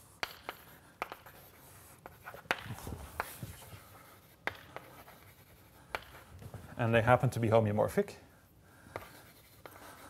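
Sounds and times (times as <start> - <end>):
chalk strokes on blackboard: 0.0 - 6.7, 8.9 - 10.0.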